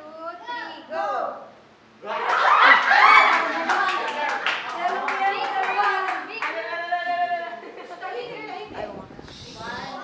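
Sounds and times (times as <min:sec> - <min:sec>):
excited voices calling out: 0:02.0 - 0:08.4
people clapping quickly: 0:02.2 - 0:06.6.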